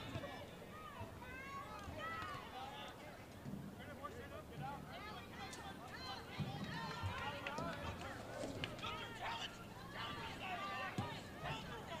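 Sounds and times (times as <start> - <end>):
people shouting across a field: 9.0 - 12.0.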